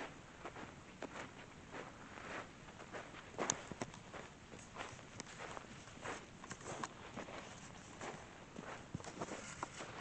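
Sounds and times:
footsteps on gravel: 0:00.0 - 0:10.0.

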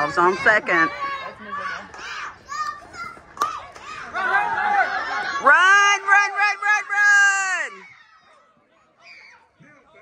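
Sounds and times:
children and spectators calling out: 0:00.0 - 0:10.0.

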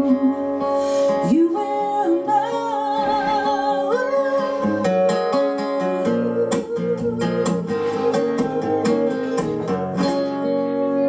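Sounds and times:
woman singing with vibrato: 0:00.0 - 0:09.8
acoustic guitar chords: 0:00.0 - 0:11.0.

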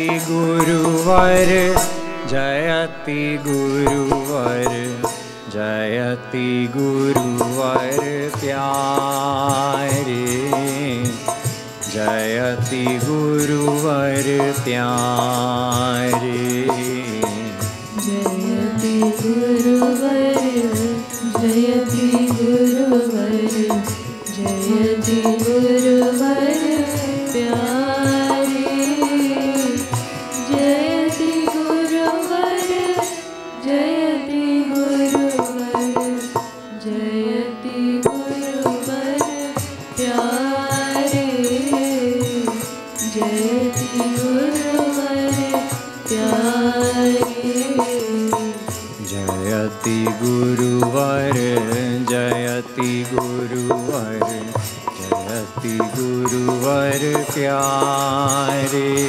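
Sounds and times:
hand percussion beat: 0:00.0 - 0:05.4, 0:07.0 - 0:33.1, 0:35.0 - 0:36.6, 0:38.0 - 0:59.0
man chanting: 0:00.0 - 0:11.3, 0:11.9 - 0:17.6, 0:49.0 - 0:59.0
harmonium: 0:00.0 - 0:59.0
drum strikes: 0:00.9 - 0:05.2.

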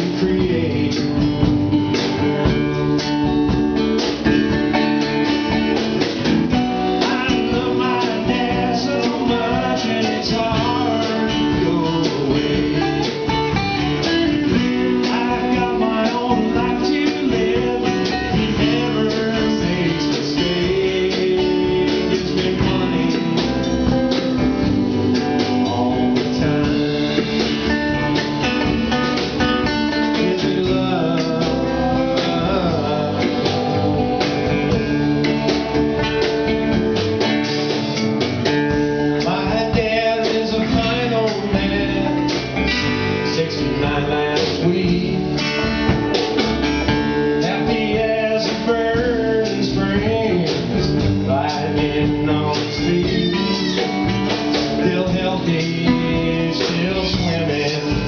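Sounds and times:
drum kit steady beat: 0:00.0 - 0:58.0
strummed acoustic guitars: 0:00.0 - 0:58.0
upright bass: 0:00.0 - 0:58.0.

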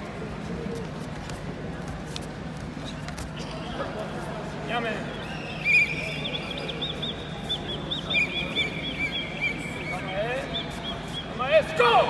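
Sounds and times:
small birds chirping: 0:05.3 - 0:11.4.

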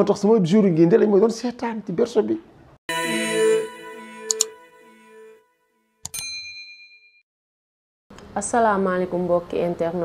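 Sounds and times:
bright bell ding: 0:02.9 - 0:05.4, 0:06.1 - 0:07.2.

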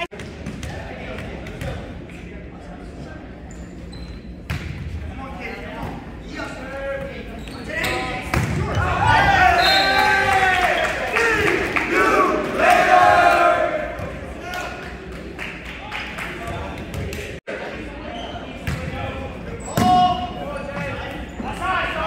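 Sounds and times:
crowd shouting and cheering: 0:08.5 - 0:15.1.

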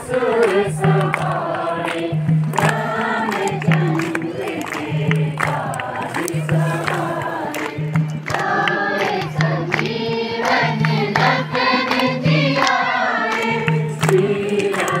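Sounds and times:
group of voices singing: 0:00.0 - 0:15.0
musical accompaniment: 0:00.0 - 0:15.0.

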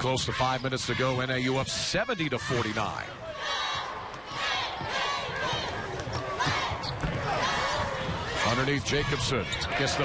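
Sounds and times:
scattered voices: 0:00.0 - 0:10.0
murmuring crowd: 0:00.8 - 0:10.0.

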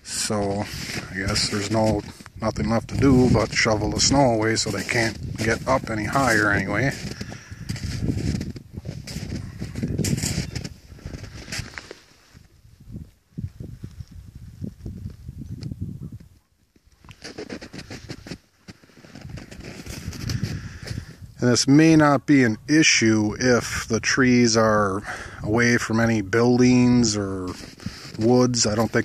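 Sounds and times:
footsteps crunching through snow: 0:00.0 - 0:12.6, 0:16.7 - 0:21.2, 0:26.8 - 0:29.0.

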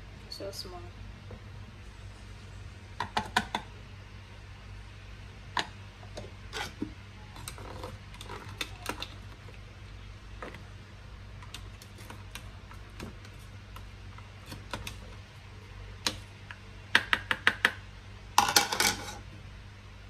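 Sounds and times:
steady low hum: 0:00.0 - 0:20.0.

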